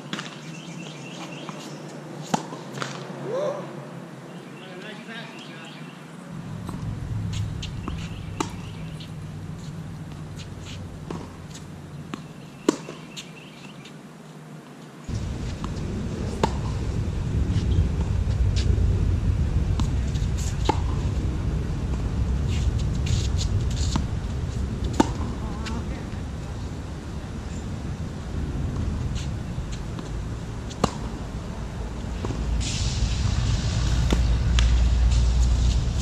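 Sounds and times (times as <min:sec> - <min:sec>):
low rumble: 0:06.3 - 0:12.0, 0:15.1 - 0:36.0
tennis ball struck by rackets: 0:07.6 - 0:13.0, 0:16.4 - 0:16.7, 0:19.8 - 0:21.0, 0:24.9 - 0:25.8, 0:30.7 - 0:31.3.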